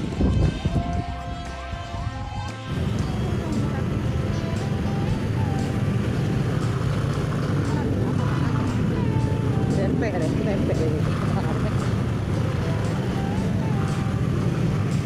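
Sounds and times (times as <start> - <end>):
background music: 0.0 - 15.0
scooter and car engines idling: 2.7 - 15.0.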